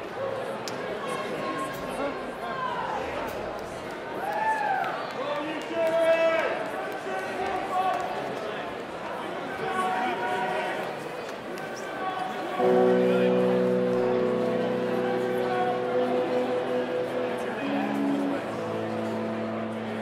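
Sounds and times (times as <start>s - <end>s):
voices chattering: 11.0s - 20.0s
electric guitar chord ringing: 12.6s - 20.0s.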